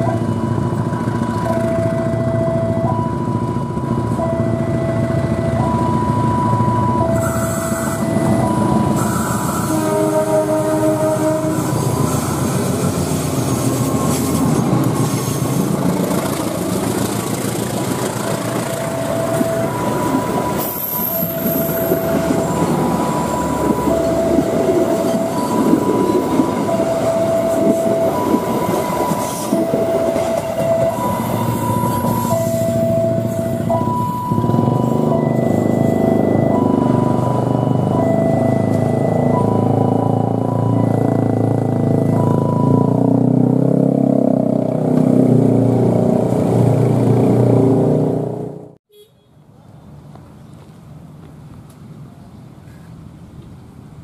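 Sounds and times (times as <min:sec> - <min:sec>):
two-tone warning signal: 0:00.0 - 0:12.6, 0:18.3 - 0:43.3
train rumbling on rails: 0:00.0 - 0:48.8
locomotive horn: 0:07.1 - 0:13.0.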